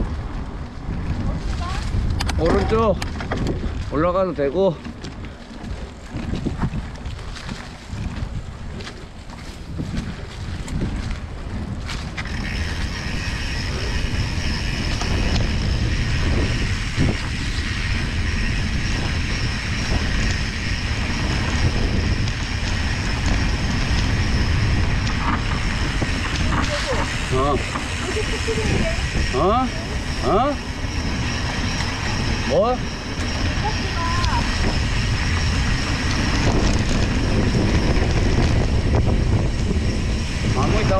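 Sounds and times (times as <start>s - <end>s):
bike tyre noise: 0.0s - 40.9s
wind buffeting microphone: 0.0s - 40.9s.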